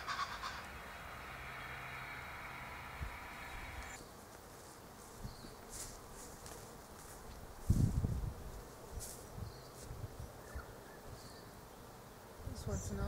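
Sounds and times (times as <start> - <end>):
faint steady buzz with tones: 0.0 - 13.0.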